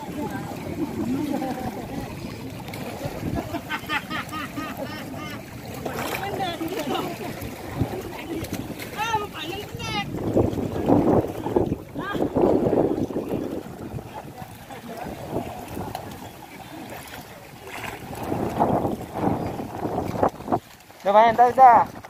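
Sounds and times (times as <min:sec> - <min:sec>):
wind on microphone: 0:00.0 - 0:03.8, 0:05.8 - 0:20.8
faint voices: 0:00.0 - 0:18.2
water sloshing and splashing: 0:00.0 - 0:22.0.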